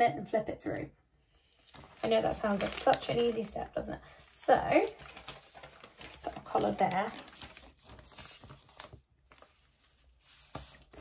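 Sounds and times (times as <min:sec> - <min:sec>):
faint rustle of paper: 0:01.5 - 0:11.0.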